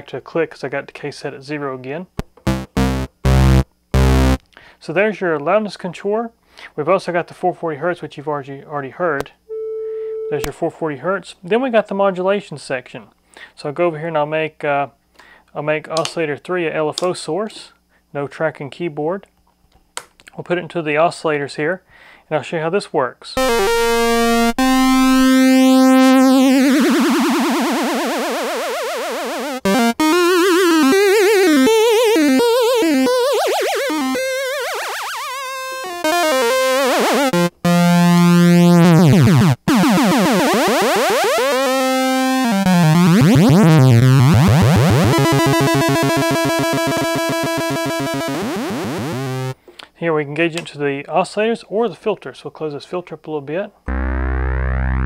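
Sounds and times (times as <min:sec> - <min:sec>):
synthesizer with wobbling pitch: 0:02.5 - 0:04.4, 0:23.4 - 0:49.6, 0:53.9 - 0:55.0.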